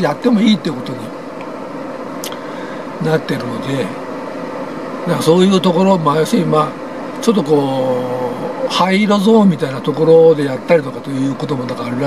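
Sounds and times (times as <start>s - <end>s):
air-conditioning blower hiss: 0.0s - 12.0s.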